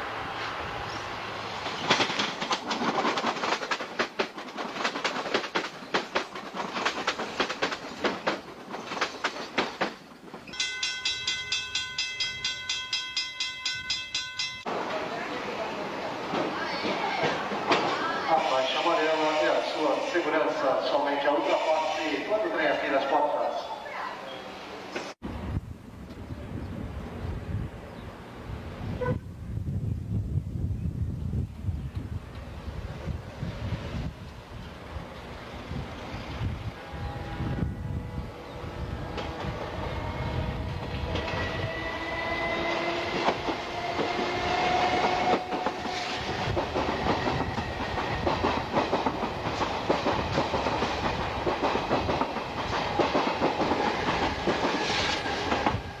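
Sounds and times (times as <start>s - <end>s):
train rumble and wheel clatter: 0.0s - 56.0s.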